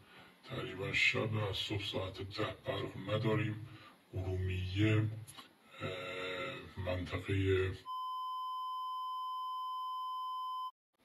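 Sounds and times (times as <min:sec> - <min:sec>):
censor bleep: 0:07.8 - 0:10.7.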